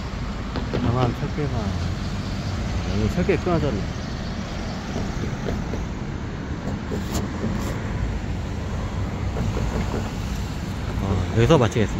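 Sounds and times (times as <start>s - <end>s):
road traffic rumble: 0.0s - 11.9s.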